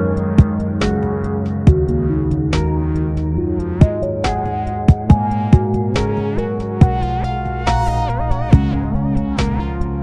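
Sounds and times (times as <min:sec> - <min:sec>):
electronic music with bending melody: 0:00.0 - 0:10.0.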